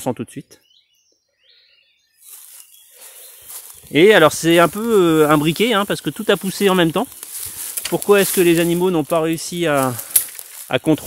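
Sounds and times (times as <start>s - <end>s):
rustling leaves and branches: 2.2s - 11.0s.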